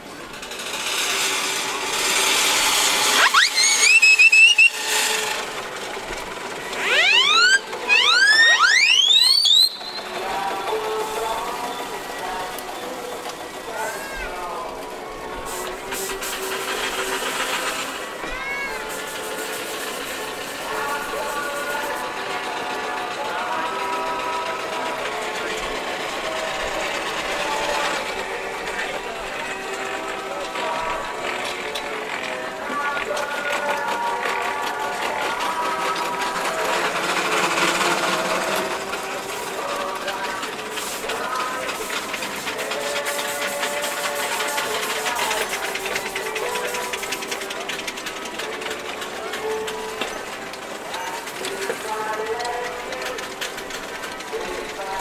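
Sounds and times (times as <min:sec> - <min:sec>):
steam engines ticking: 0:00.0 - 0:55.0.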